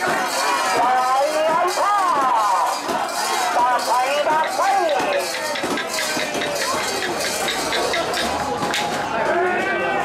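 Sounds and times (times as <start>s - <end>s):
overlapping crowd voices: 0.0s - 10.0s.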